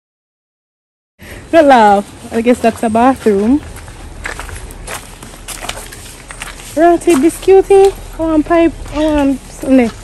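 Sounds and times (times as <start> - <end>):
footsteps on stone path: 1.6 - 10.0.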